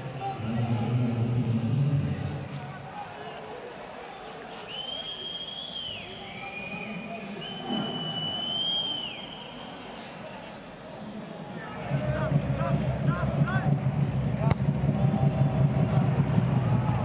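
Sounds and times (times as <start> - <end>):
faint murmur of voices: 0.0 - 17.0
shrill referee whistles: 4.7 - 9.8.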